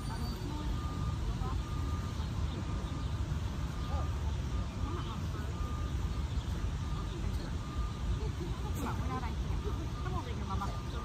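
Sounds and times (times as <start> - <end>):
faint voices: 0.0 - 11.0
low outdoor rumble: 0.0 - 11.0.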